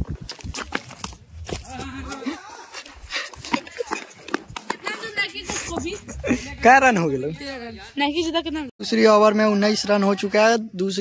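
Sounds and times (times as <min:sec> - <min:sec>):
people talking and calling out: 0:01.6 - 0:11.0.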